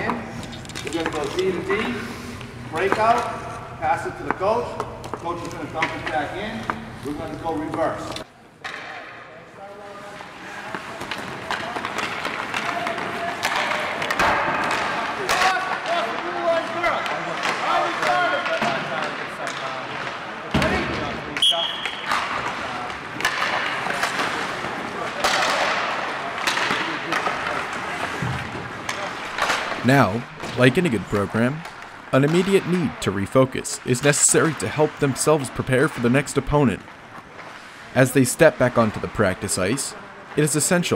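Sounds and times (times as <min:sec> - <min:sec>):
pucks hitting sticks and boards: 0:00.0 - 0:09.2, 0:10.0 - 0:40.9.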